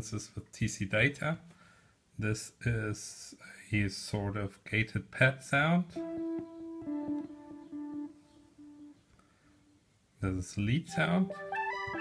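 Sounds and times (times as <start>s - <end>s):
gated synthesizer pad pulses: 5.9s - 9.0s.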